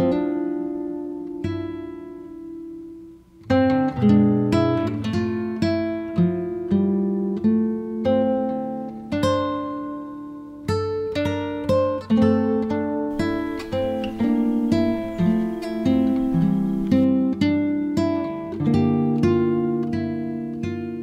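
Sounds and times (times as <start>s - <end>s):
acoustic guitar plucked notes: 0.0s - 21.0s.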